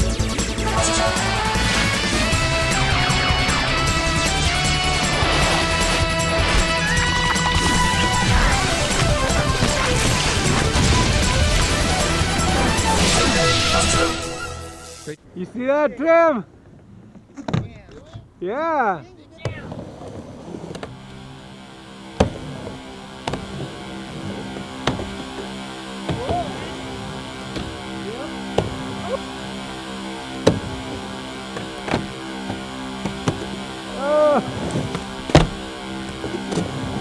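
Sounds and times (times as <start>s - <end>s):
music with sustained chord: 0.0s - 15.2s, 20.8s - 37.0s
skateboard wheels rolling: 1.0s - 14.0s, 19.2s - 29.2s, 30.3s - 37.0s
person calling out: 26.1s - 26.8s, 29.0s - 29.3s, 33.9s - 34.5s.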